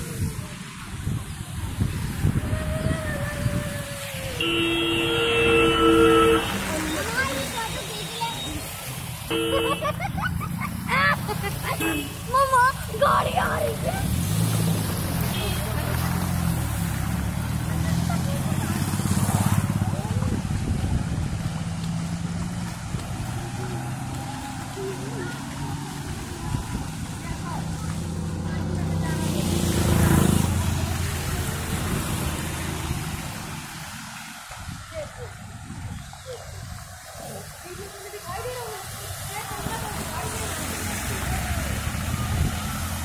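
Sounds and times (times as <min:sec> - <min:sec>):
vehicle passing close: 0:00.0 - 0:35.6, 0:36.8 - 0:43.0
tyres splashing through floodwater: 0:00.0 - 0:43.0.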